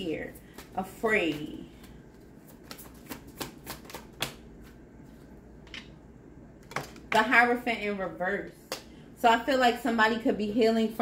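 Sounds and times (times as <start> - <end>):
cards being shuffled: 0.4 - 5.4.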